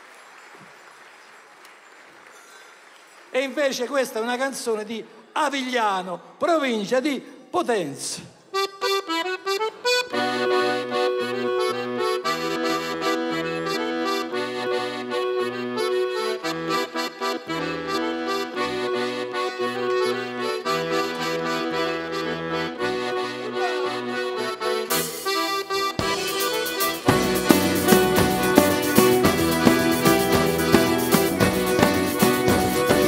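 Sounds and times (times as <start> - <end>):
button accordion folk tune: 8.5 - 33.0.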